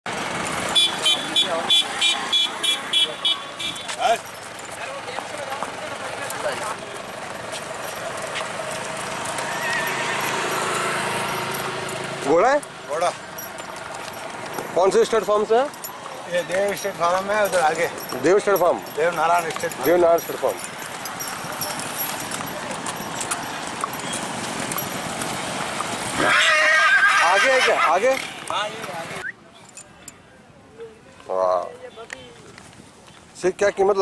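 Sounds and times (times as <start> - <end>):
horse hooves clopping on pavement: 0.1 - 29.2
crowd chatter: 0.6 - 11.6, 13.2 - 25.9.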